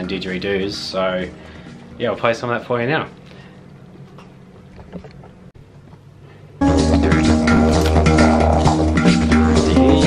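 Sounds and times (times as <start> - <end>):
didgeridoo drone: 6.7 - 10.0.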